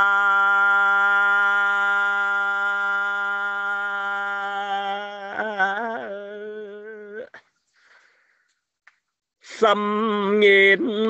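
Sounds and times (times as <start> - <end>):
person singing long held note: 0.0 - 7.3.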